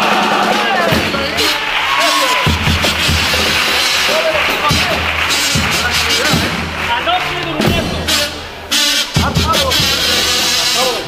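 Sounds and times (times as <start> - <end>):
bass drum beats: 0.0 - 11.0
hall background noise: 0.0 - 11.0.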